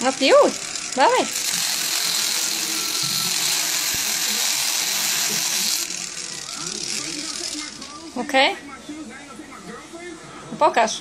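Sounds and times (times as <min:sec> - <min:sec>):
electric grinder hissing: 0:00.0 - 0:08.3.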